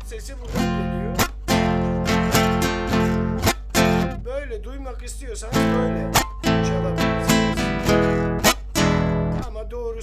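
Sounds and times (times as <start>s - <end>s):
guitar strumming: 0.4s - 4.4s, 5.5s - 9.5s
palm slapping guitar strings: 0.5s - 4.2s, 5.6s - 9.4s.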